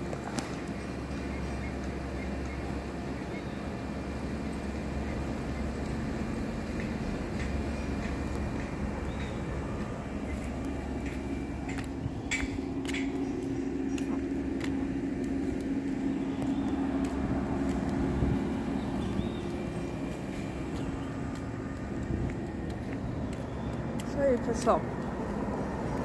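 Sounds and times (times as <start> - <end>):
mechanical drone humming: 0.0 - 26.0.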